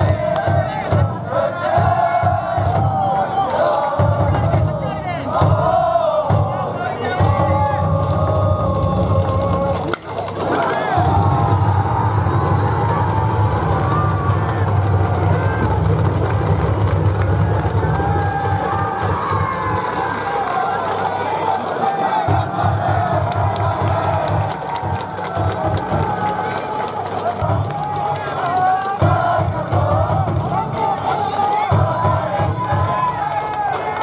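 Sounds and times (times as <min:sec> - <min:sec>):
crowd cheering and chanting: 0:00.0 - 0:34.0.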